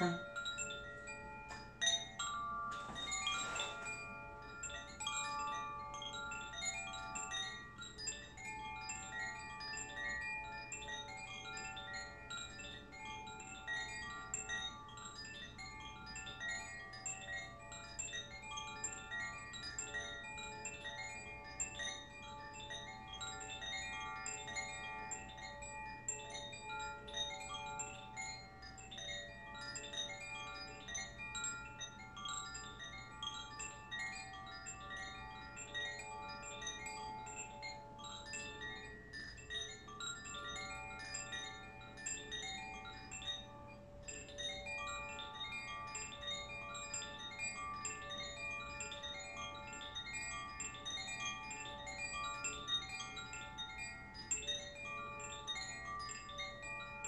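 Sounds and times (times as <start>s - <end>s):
gentle chime music: 0.0s - 57.0s
rustling noise: 2.7s - 4.3s.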